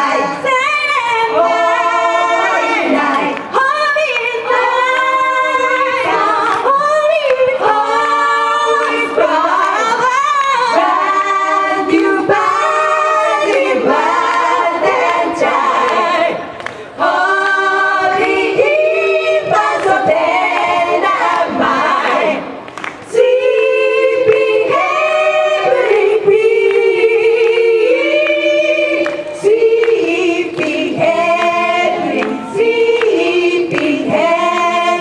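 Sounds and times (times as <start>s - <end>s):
women singing together: 0.0s - 35.0s.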